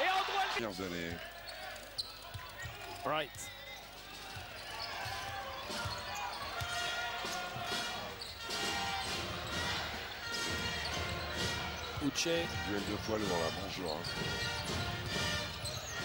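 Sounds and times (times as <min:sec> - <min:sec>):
arena crowd noise with voices: 0:00.0 - 0:16.0.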